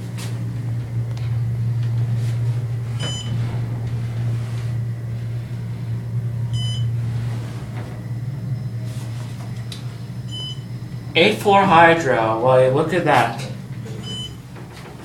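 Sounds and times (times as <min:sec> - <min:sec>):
elevator low hum: 0:00.0 - 0:15.0
short high elevator beep: 0:03.0 - 0:03.6, 0:06.5 - 0:07.0, 0:08.3 - 0:11.1, 0:14.0 - 0:14.4.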